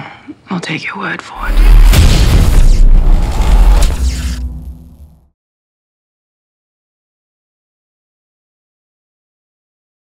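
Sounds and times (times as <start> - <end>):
cinematic impact boom: 1.4 - 5.3
low rumble: 1.4 - 5.3.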